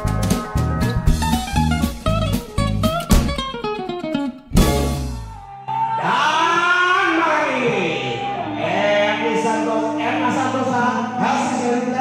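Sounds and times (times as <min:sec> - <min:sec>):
quiet live band backing: 0:00.0 - 0:06.0
strummed guitar chord: 0:01.0 - 0:05.6
man singing gliding notes: 0:05.9 - 0:12.0.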